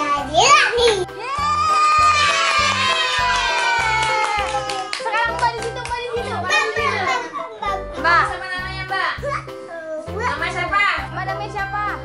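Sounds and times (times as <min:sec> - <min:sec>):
background music with steady beat: 0:00.0 - 0:12.0.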